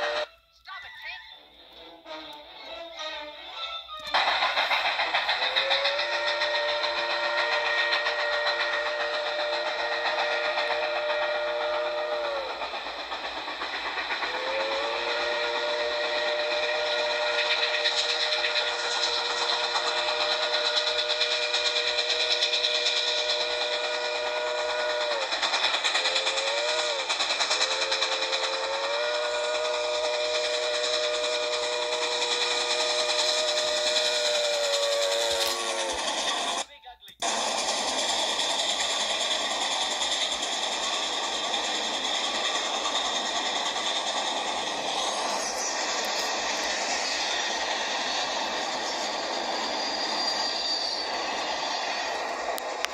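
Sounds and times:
approaching train noise: 0.0s - 52.9s
steam locomotive whistle: 0.0s - 52.9s.

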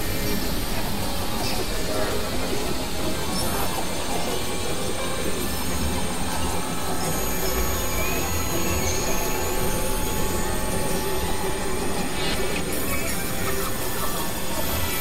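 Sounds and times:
dense synthesizer hiss: 0.0s - 15.0s.

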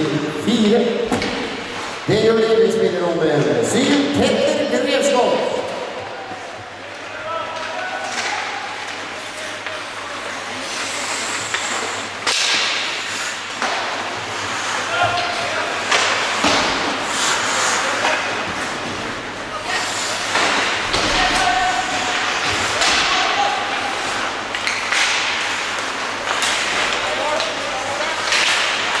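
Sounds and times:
skates scraping ice: 3.6s - 29.0s
hockey sticks and puck knocking: 7.0s - 19.2s, 20.2s - 29.0s.

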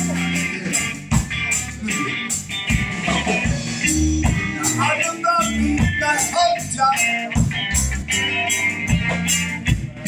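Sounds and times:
drum kit beat: 0.0s - 10.0s
electric bass: 0.0s - 10.0s
electric guitar: 0.0s - 10.0s.

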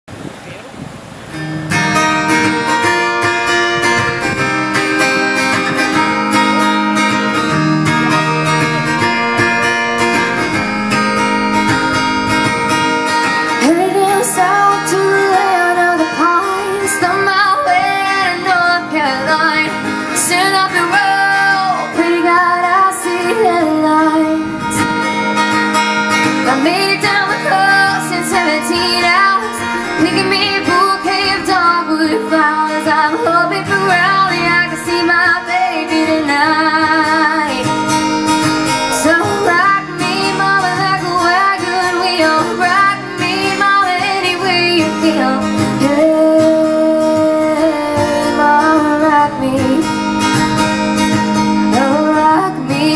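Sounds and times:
strummed acoustic guitar: 1.2s - 52.9s
woman singing folk song: 1.7s - 52.9s.

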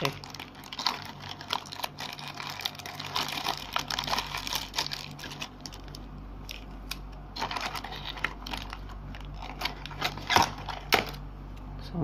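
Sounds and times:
packaging rustling and crinkling: 0.0s - 11.2s.

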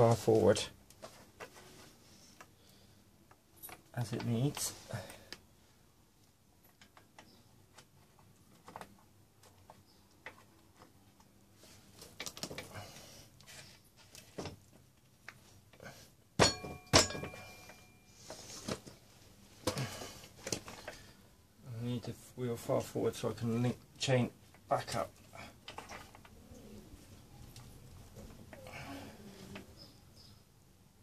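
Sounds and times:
ringing metallic clink: 16.4s - 18.0s.

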